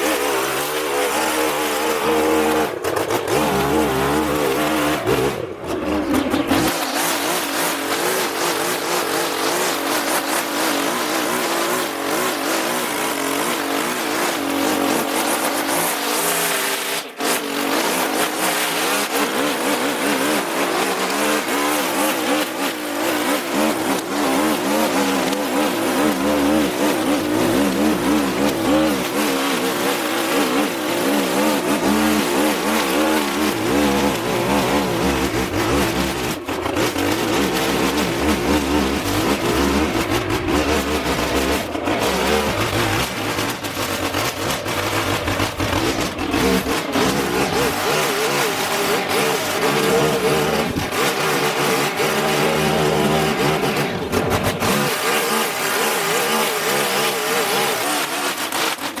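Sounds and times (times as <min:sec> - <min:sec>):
string trimmer cutting grass: 0:00.0 - 0:59.0.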